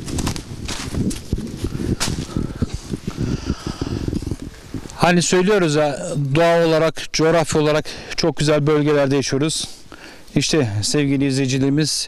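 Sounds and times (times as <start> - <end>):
footsteps in dry leaves: 0.0 - 3.1.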